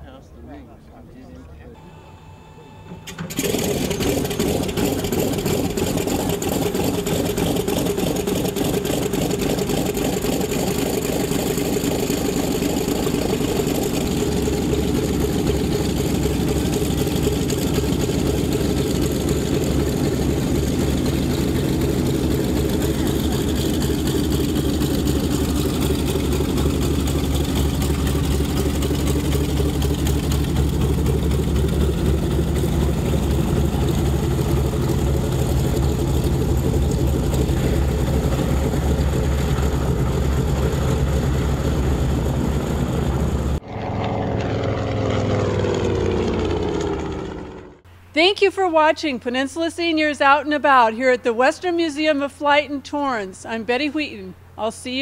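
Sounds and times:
propeller plane engine rumbling: 0.0 - 55.0.

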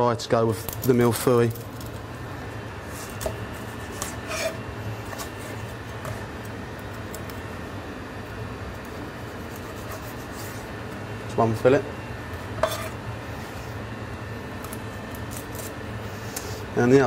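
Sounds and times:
steady low hum: 0.0 - 17.0
knife scraping and tapping board: 3.1 - 6.2, 12.6 - 13.0.

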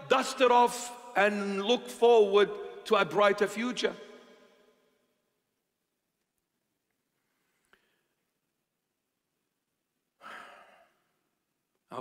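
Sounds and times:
man speaking: 0.0 - 4.1
man breathing: 10.2 - 11.2.

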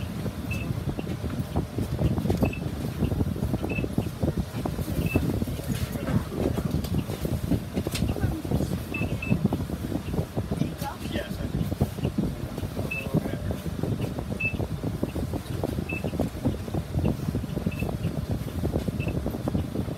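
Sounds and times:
bus engine idling: 0.0 - 19.9
farebox beeping: 5.0 - 5.4, 12.8 - 13.3.

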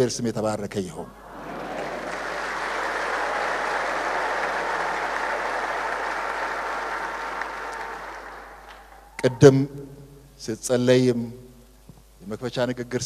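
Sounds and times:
audience applauding: 1.2 - 9.3.

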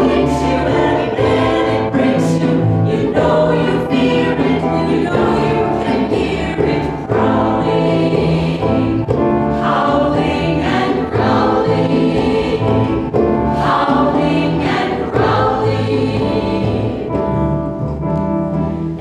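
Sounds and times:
ensemble singing chorus: 0.0 - 17.6.

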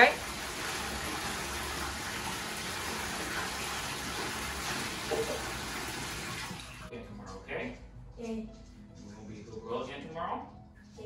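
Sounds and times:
tap water running into bathtub: 0.0 - 6.9.

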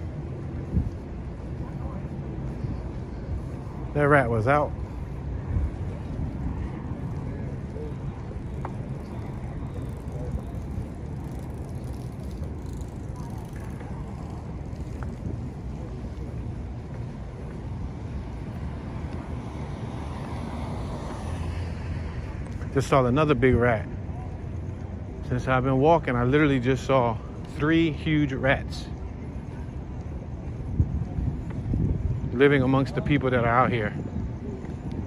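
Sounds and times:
distant traffic: 0.0 - 35.0
wind rumbling on microphone: 0.0 - 35.0.

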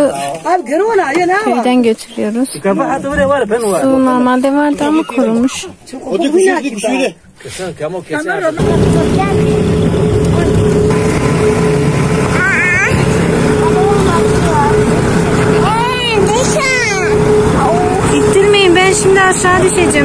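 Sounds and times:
tractor engine droning: 8.6 - 20.0
voices calling out: 8.6 - 20.0.

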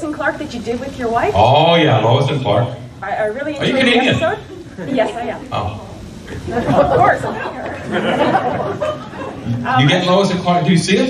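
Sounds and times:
crowd chatter in a hall: 2.5 - 11.0.

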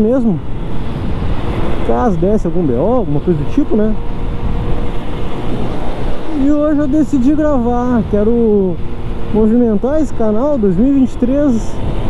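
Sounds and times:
road noise: 0.0 - 12.0
wind rushing over microphone: 0.0 - 12.0.

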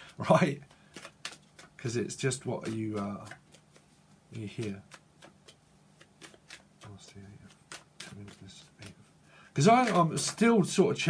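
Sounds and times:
cards being shuffled: 0.0 - 11.0.

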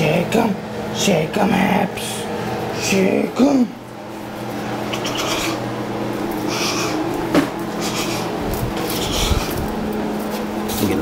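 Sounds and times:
steady low hum: 0.0 - 11.0
puppies growling and scuffling: 3.8 - 11.0.

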